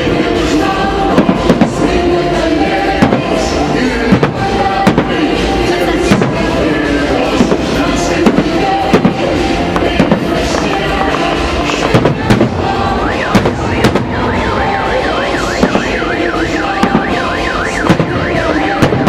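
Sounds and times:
music: 0.0s - 19.0s
electronic siren sweeping: 12.8s - 19.0s.

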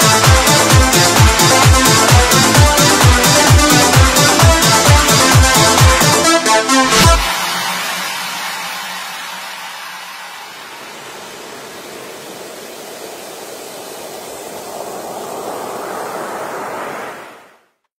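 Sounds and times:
waves breaking and washing in: 0.0s - 17.8s.

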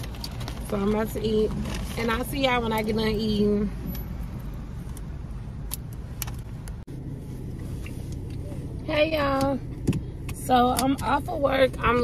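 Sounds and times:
car engine idling: 0.0s - 12.0s.

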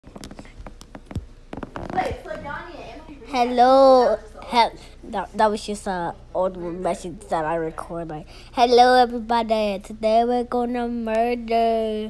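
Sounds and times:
faint clicks and crackles: 0.0s - 2.4s.

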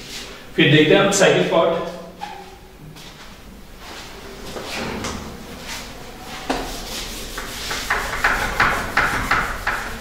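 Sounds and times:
duster wiping a whiteboard: 5.6s - 10.0s.

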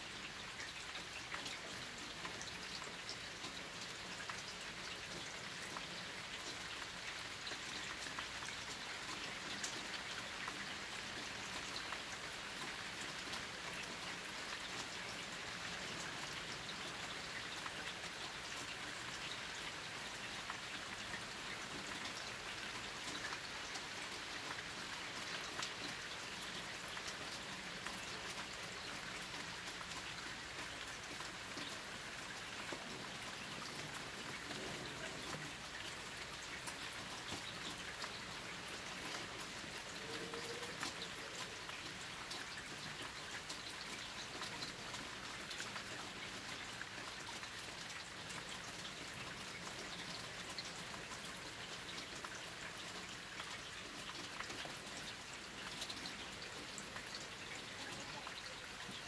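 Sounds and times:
steady rain falling: 0.0s - 59.0s.

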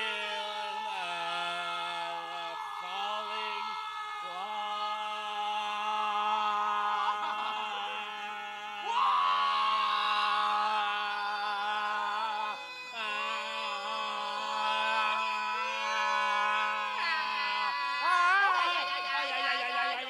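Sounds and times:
men singing a cappella harmony: 0.0s - 20.0s.

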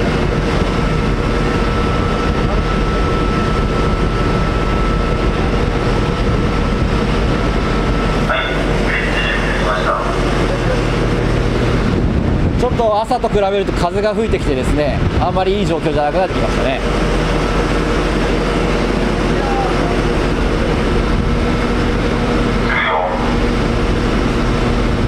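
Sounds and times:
ship engines droning: 0.0s - 25.0s
thin steady whine: 0.0s - 25.0s
wind: 0.0s - 25.0s.

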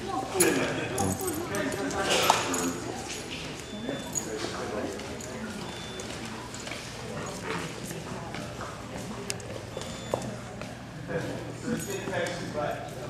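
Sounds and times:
indistinct background talk: 0.0s - 13.0s.

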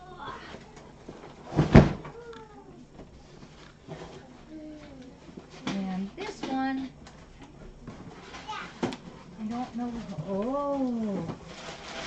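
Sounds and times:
cardboard box thump: 1.5s - 2.1s.

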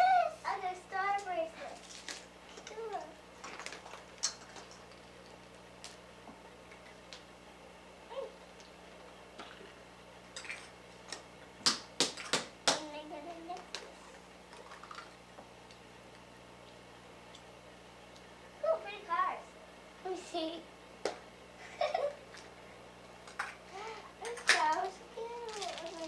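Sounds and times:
child vocal sounds: 0.0s - 1.8s, 23.7s - 26.0s.

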